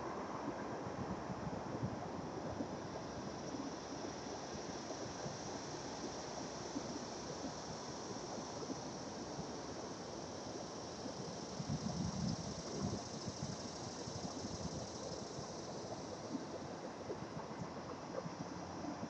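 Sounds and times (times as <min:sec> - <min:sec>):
outdoor background noise: 0:00.0 - 0:19.0
wind rumble on microphone: 0:00.1 - 0:09.4, 0:10.7 - 0:19.0.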